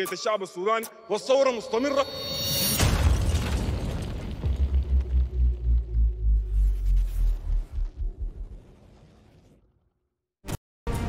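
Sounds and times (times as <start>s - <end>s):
deep impact sound: 2.2s - 8.9s
pulsing low bass: 4.6s - 8.4s.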